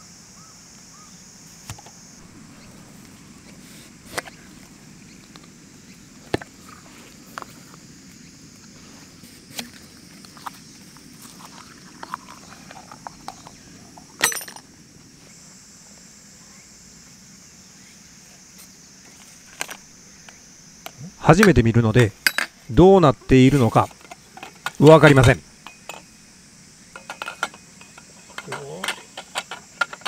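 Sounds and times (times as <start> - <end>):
ringing metal clank: 14.2 - 14.6, 22.2 - 22.6, 24.4 - 26.2, 26.9 - 30.0
tent poles knocking and clicking: 23.5 - 26.1, 26.9 - 30.0.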